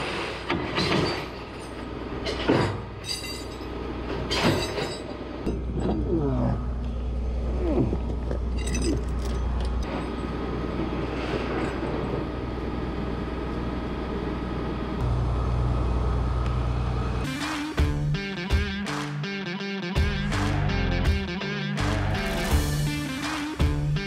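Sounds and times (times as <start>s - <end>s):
tow truck engine and hydraulic winch: 6.8s - 17.3s
music: 17.2s - 24.0s.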